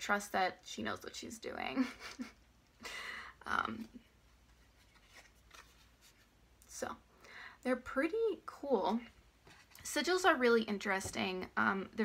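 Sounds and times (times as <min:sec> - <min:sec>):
cards rustling: 0:04.4 - 0:06.3.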